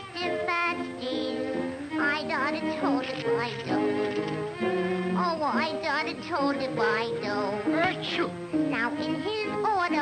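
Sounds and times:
woman singing: 0.0s - 3.8s, 5.2s - 10.0s
instrumental accompaniment: 0.0s - 10.0s.

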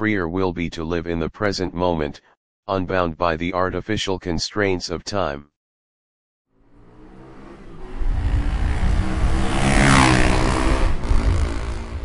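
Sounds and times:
motorcycle engine running: 6.8s - 12.0s
wind rush: 7.8s - 12.0s.

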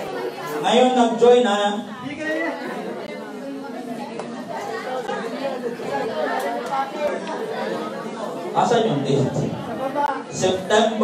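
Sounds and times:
room of people chattering: 0.0s - 11.0s.

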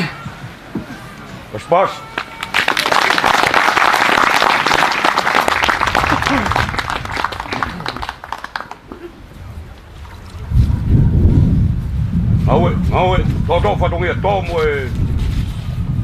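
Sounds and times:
crowd applause: 2.1s - 9.2s
low rumble: 9.2s - 16.0s.

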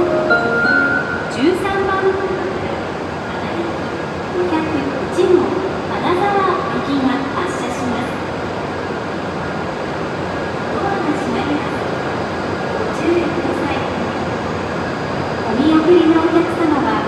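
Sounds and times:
train equipment humming: 0.0s - 4.6s
station noise: 0.0s - 8.0s.

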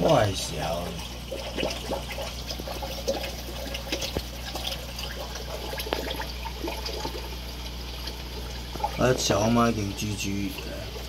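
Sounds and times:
aquarium water trickling and bubbling: 0.0s - 11.0s
steady low hum: 0.0s - 11.0s.

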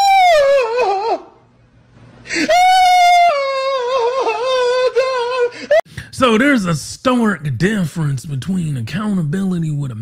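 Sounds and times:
woman's wailing scream: 0.0s - 1.4s, 2.4s - 5.8s.

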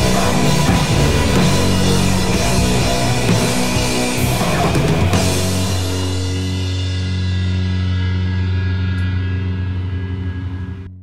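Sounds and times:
electric guitar and bass chord: 0.0s - 11.0s.

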